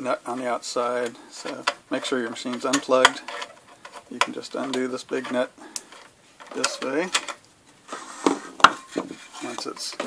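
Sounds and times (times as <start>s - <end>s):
screwdriver scraping metal: 1.4s - 7.4s.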